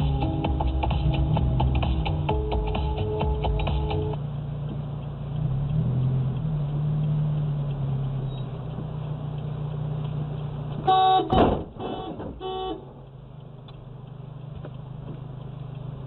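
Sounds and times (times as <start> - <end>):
car engine idling: 0.0 - 16.0
car horn honking: 10.8 - 13.0
loud thump: 11.2 - 12.4.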